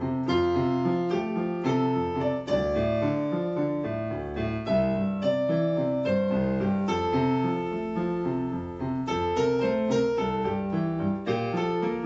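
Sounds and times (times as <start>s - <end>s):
electronic keyboard piano chords: 0.0s - 12.0s.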